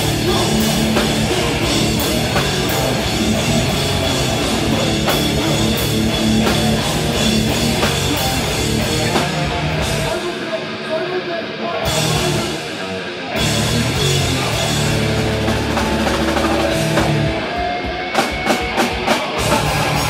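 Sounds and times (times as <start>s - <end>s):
death metal band playing: 0.0s - 20.0s.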